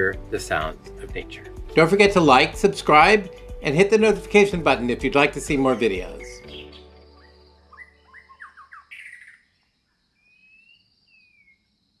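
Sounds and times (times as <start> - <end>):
music track: 0.0 - 8.1
small birds chirping: 5.6 - 11.7.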